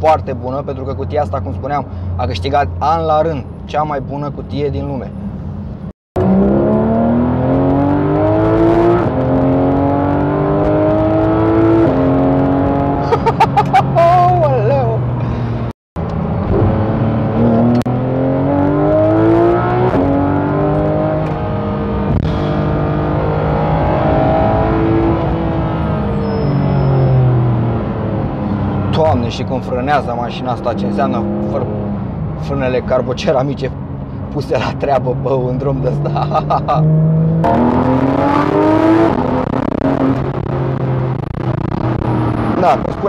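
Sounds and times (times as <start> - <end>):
car engine revving through upshifts: 6.2 - 13.2, 16.2 - 32.4, 35.0 - 43.0.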